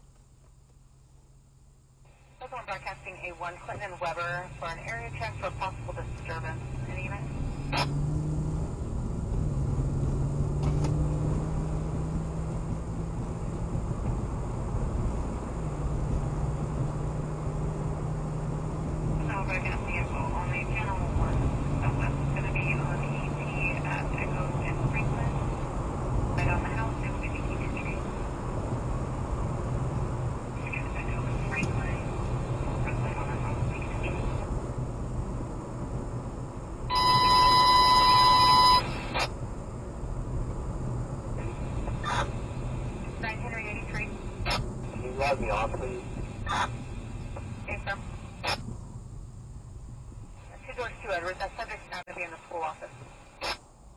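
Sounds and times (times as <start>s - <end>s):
road and engine hum: 0.0s - 53.9s
radio dispatch chatter: 2.4s - 7.9s, 19.2s - 25.4s, 26.4s - 28.2s, 30.6s - 34.4s, 36.9s - 39.3s, 43.1s - 46.8s, 47.6s - 48.6s, 50.4s - 53.6s
electronic alert beep: 36.9s - 39.2s.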